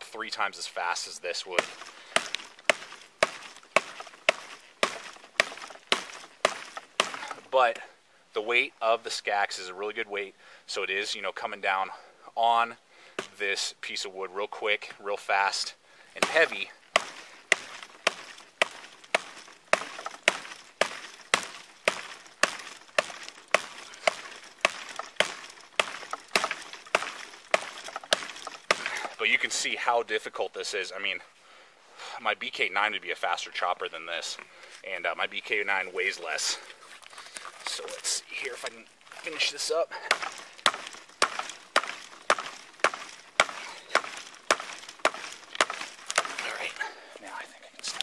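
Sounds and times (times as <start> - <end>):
tomahawk chopping branch: 1.2 - 7.8, 13.2 - 13.6, 16.2 - 29.5, 36.0 - 47.0.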